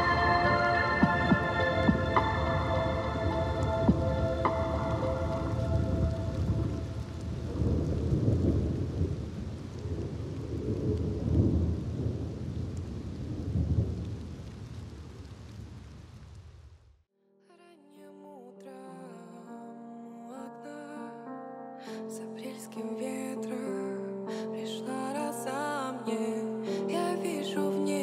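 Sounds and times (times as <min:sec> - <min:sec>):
synth chords: 0:00.0 - 0:07.2
low rolling thunder: 0:00.0 - 0:16.0
rain: 0:00.0 - 0:17.0.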